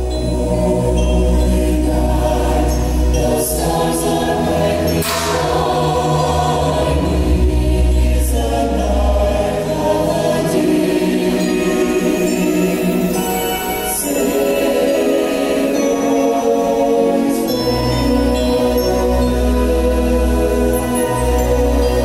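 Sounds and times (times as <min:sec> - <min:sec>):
choir singing: 0:00.0 - 0:22.0
musical accompaniment: 0:00.0 - 0:22.0.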